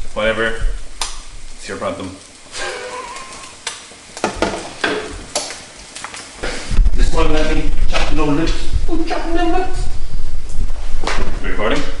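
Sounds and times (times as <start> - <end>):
spitting fat crackles: 0.0 - 11.3
food sizzling in oil: 0.0 - 11.4
low rumble: 6.7 - 12.0.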